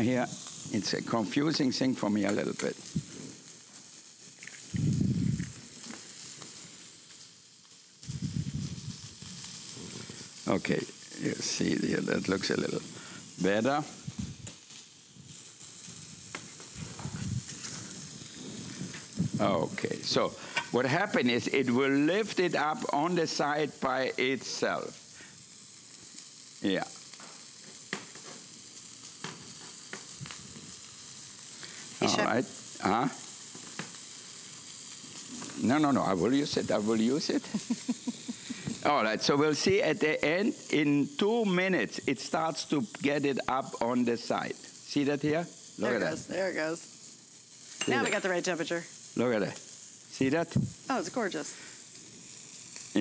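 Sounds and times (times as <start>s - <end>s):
egg sizzling in a skillet: 0.0s - 53.0s.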